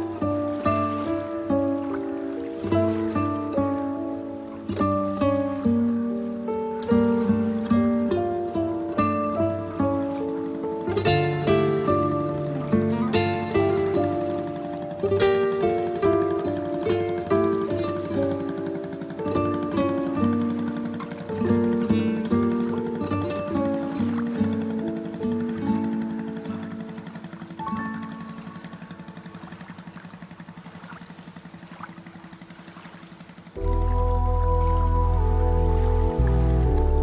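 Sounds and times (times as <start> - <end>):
plucked melody over low pulse: 0.0 - 31.0, 33.5 - 37.0.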